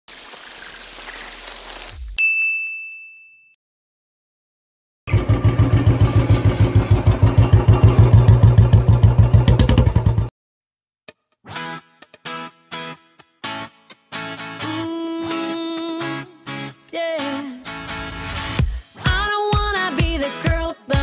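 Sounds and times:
bright ding: 2.2s - 3.6s
motorcycle engine idling: 5.1s - 10.3s.

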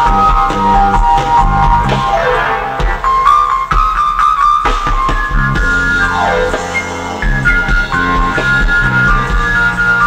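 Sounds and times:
percussion hits: 0.0s - 8.4s
lead melody holding long notes: 0.0s - 10.0s.

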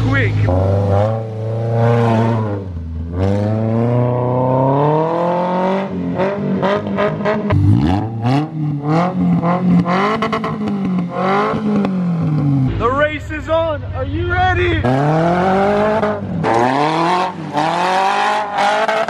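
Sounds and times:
engine revving: 0.0s - 19.0s.

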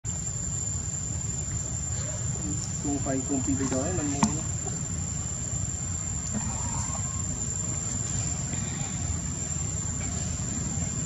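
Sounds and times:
high-pitched insect drone: 0.1s - 11.0s.

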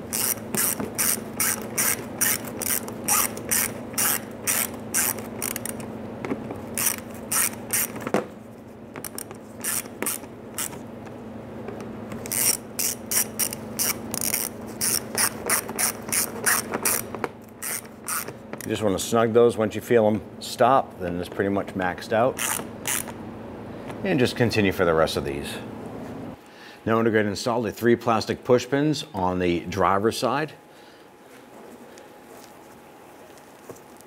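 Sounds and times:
hand ratchet clicking: 0.1s - 5.9s, 6.8s - 8.0s, 9.0s - 10.8s, 12.2s - 18.7s.

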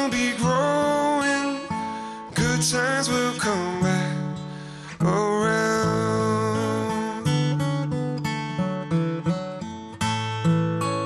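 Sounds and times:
man singing: 0.0s - 7.7s
strummed acoustic guitar: 0.0s - 11.0s.

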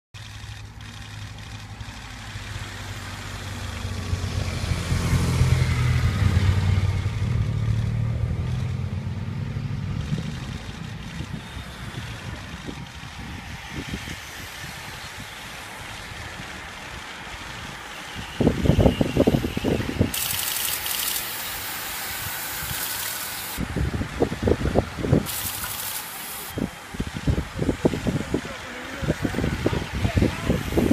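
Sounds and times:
bicycles riding past with hiss: 0.2s - 30.9s
motor vehicle engine hum: 0.2s - 30.9s
wind buffeting microphone: 9.0s - 16.4s, 17.2s - 30.9s.

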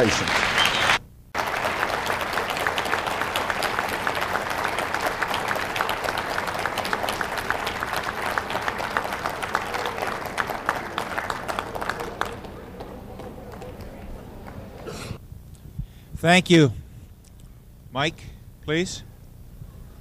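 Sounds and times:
audience applauding: 0.0s - 15.2s.

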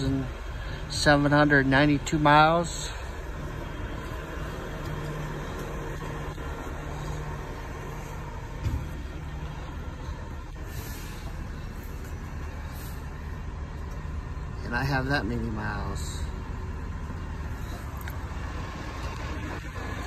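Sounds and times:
short thump: 8.6s - 9.0s.

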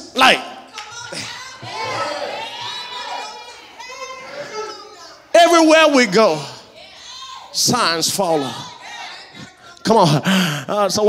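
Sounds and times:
preacher speaking: 0.0s - 0.6s, 3.9s - 6.7s, 7.6s - 8.8s, 9.4s - 11.0s
congregation voices talking: 0.0s - 11.0s.

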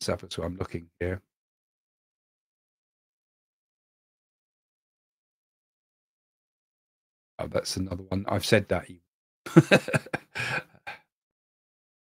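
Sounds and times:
man's breathy laugh: 9.5s - 11.0s.

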